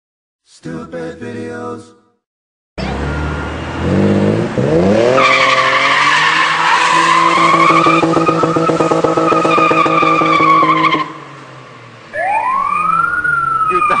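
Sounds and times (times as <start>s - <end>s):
car engine revving high: 2.8s - 14.0s
high squeal rising and falling: 12.1s - 14.0s.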